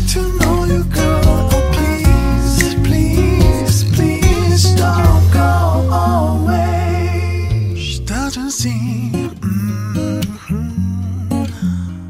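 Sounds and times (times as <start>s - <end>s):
bass line: 0.0s - 10.0s
strummed acoustic guitar: 0.0s - 12.0s
gliding vocal melody: 0.4s - 11.7s.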